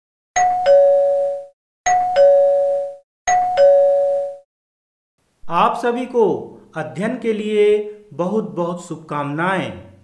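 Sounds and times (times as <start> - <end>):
two-tone doorbell chime: 0.4 - 4.5.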